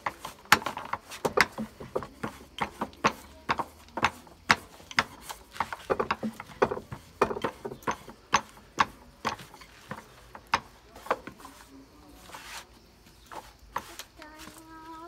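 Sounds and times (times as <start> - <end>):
rolling pin on wooden board: 0.0 - 14.7.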